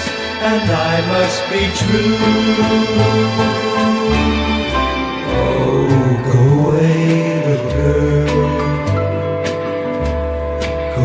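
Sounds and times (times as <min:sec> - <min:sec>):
male vocal group singing in harmony: 0:00.0 - 0:09.4
instrumental backing: 0:00.0 - 0:11.0.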